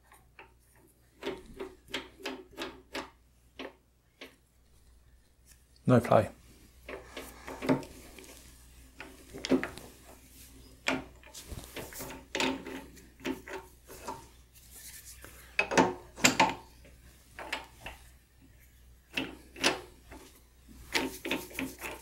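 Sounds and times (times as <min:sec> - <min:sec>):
metal scraping and clicking: 0:19.1 - 0:20.3.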